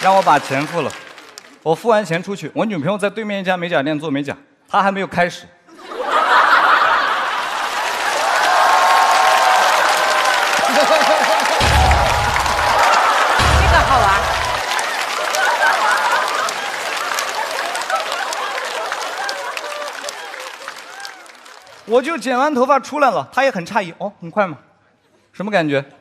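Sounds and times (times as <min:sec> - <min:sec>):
studio audience laughing and applauding: 0:00.0 - 0:01.6, 0:05.7 - 0:22.1
deep booming sound effect hits: 0:11.6 - 0:14.6.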